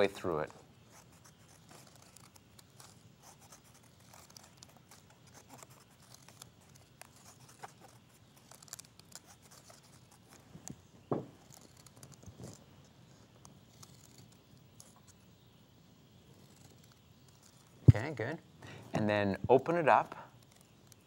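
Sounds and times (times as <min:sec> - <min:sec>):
paper rustling: 0:00.0 - 0:12.7, 0:13.7 - 0:15.2.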